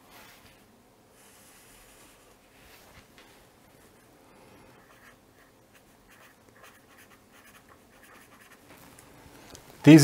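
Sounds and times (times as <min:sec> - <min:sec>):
felt-tip pen scratching on paper: 0:04.8 - 0:08.6.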